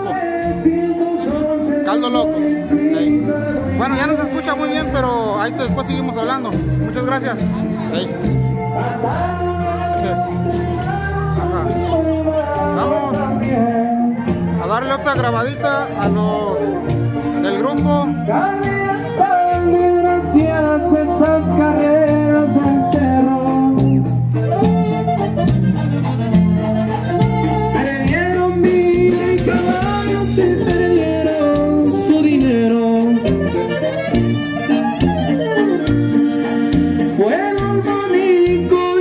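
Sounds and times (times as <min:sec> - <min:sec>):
person singing: 0:00.0 - 0:05.0, 0:08.6 - 0:14.6, 0:17.8 - 0:25.3, 0:27.5 - 0:39.0
accordion: 0:00.0 - 0:39.0
bass guitar and drums: 0:00.0 - 0:39.0
saxophone: 0:15.6 - 0:39.0.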